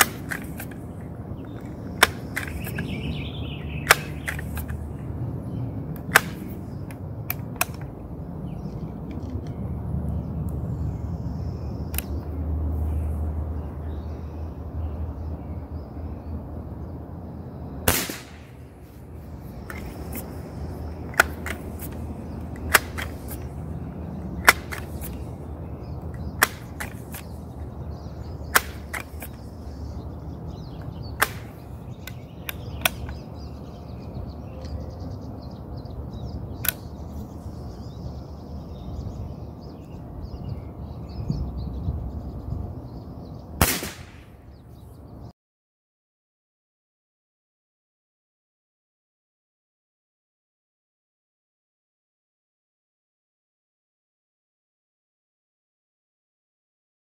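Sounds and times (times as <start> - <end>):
air rifle shot: 0.0 - 0.8, 2.0 - 5.0, 6.0 - 7.8, 17.8 - 19.0, 19.6 - 23.6, 24.4 - 25.3, 26.2 - 27.4, 28.4 - 29.5, 31.0 - 33.2, 43.6 - 44.4
pump lever clacking: 2.0 - 2.9, 3.8 - 4.8.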